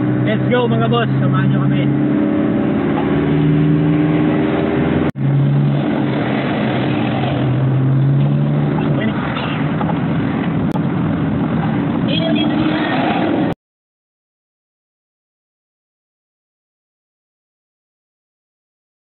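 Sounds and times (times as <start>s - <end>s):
road noise inside car: 0.0s - 13.6s
vehicle engine drone: 0.0s - 13.6s.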